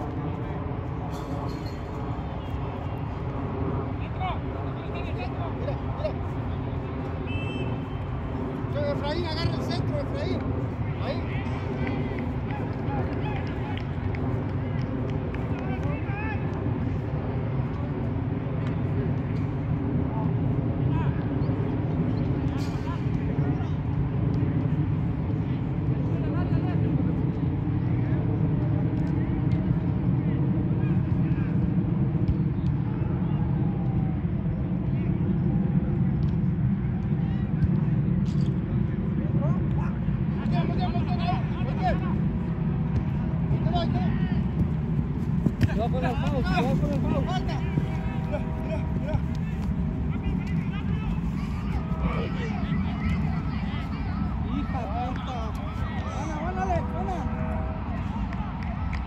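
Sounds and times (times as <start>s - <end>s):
distant players shouting and talking: 0.0s - 59.0s
steady low rumble: 0.0s - 59.0s.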